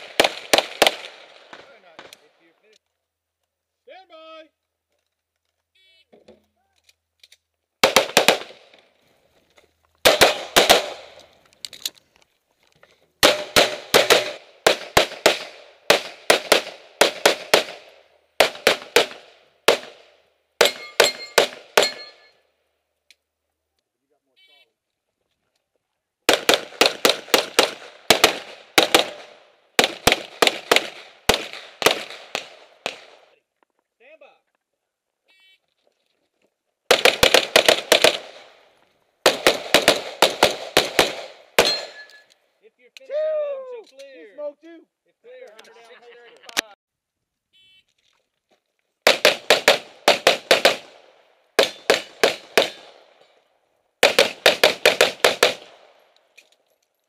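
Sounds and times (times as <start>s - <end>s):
pistol firing rapid shots: 0.0s - 1.3s, 7.8s - 8.6s, 10.0s - 11.1s, 13.2s - 20.0s, 20.6s - 22.0s, 26.3s - 33.2s, 36.9s - 38.5s, 39.2s - 41.9s, 49.1s - 51.0s, 51.6s - 53.0s, 54.0s - 55.9s.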